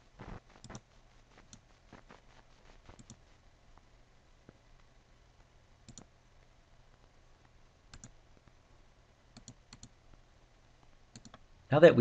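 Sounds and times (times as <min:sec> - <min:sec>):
faint low hum: 0:00.0 - 0:12.0
computer mouse clicking: 0:00.6 - 0:01.7, 0:02.9 - 0:03.2, 0:05.8 - 0:06.1, 0:07.9 - 0:08.2, 0:09.3 - 0:10.0, 0:11.1 - 0:11.4.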